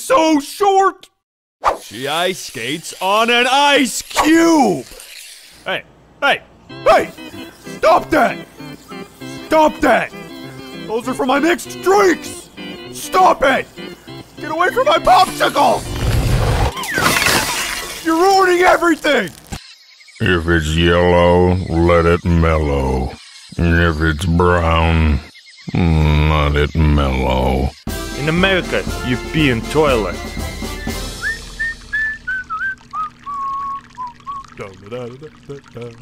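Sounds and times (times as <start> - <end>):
man's voice: 5.7 - 8.5, 10.8 - 13.8, 20.2 - 30.3
ice shattering crash: 15.7 - 19.6
man whistling a tune: 30.2 - 34.6
urine splashing into toilet: 31.4 - 36.0.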